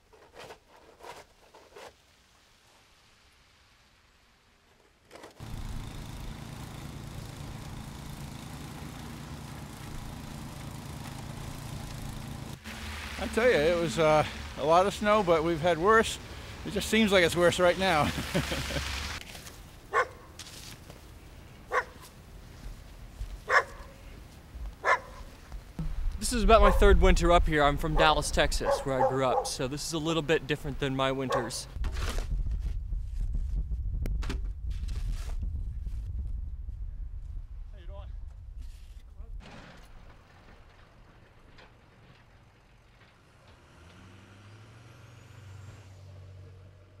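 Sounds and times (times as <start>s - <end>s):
vehicle engine running: 5.4s - 18.0s
dog barking: 19.9s - 20.3s, 21.7s - 22.0s, 23.5s - 24.0s, 24.8s - 25.3s, 26.6s - 26.8s, 28.6s - 29.6s, 31.3s - 31.6s.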